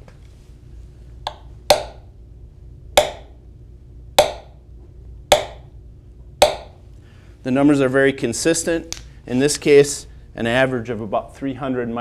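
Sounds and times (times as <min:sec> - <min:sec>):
hammer tapping steel probe: 0:01.2 - 0:02.1, 0:03.0 - 0:03.4, 0:04.2 - 0:04.6, 0:05.3 - 0:05.7, 0:06.4 - 0:06.8.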